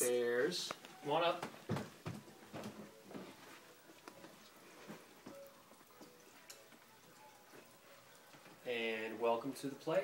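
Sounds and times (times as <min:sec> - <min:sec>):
footsteps on carpeted stairs: 0:01.4 - 0:03.6.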